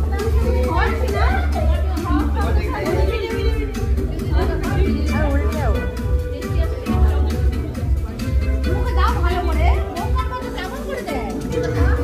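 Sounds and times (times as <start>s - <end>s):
loud music with heavy bass: 0.0s - 12.0s
people chattering: 0.0s - 12.0s.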